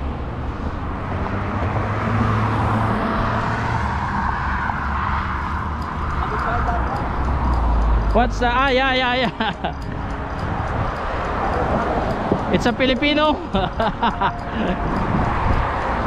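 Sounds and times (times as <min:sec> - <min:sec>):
car passing by: 0:00.0 - 0:08.6
road traffic: 0:00.0 - 0:16.0
wind buffeting microphone: 0:05.2 - 0:16.0.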